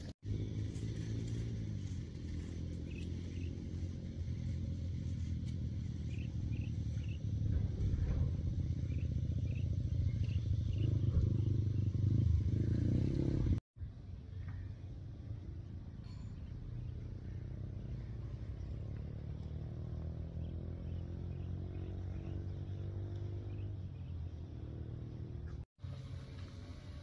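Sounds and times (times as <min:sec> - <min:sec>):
low engine drone: 0:00.0 - 0:19.5.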